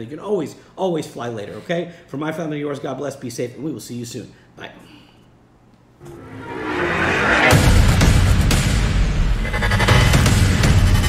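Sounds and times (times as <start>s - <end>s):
rising whooshing swell: 6.0s - 9.9s.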